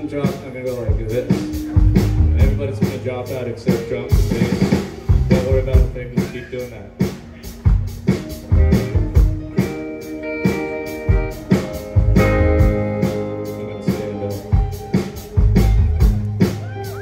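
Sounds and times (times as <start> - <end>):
live rock band playing: 0.0 - 17.0.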